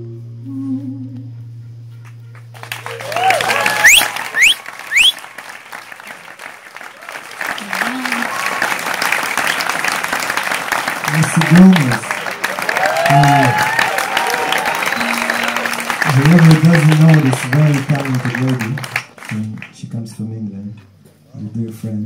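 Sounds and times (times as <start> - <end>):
audience applauding and cheering: 2.0 - 19.8
sharp rising whistles: 3.8 - 5.2
music held note: 15.0 - 16.1.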